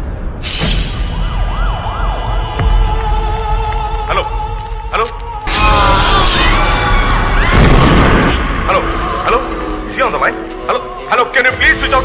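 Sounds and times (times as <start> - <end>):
siren wailing: 0.9 - 8.4
deep boom: 5.5 - 9.6.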